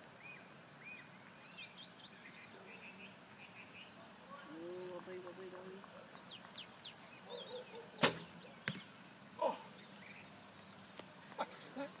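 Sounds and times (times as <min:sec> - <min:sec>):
faint bird chirps: 0:00.2 - 0:11.9
arrow striking target: 0:08.0 - 0:08.9.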